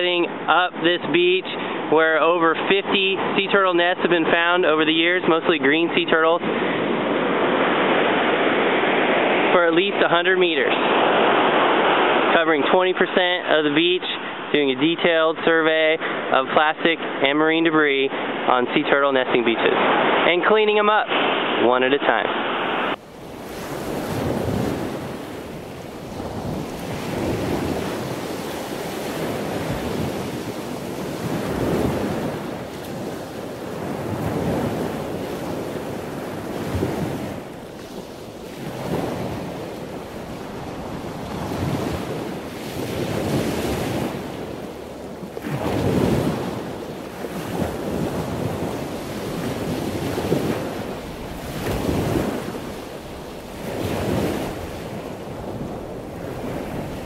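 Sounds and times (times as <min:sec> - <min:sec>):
waves breaking on beach: 0:00.0 - 0:57.0
wind on microphone: 0:05.8 - 0:13.4, 0:22.3 - 0:57.0.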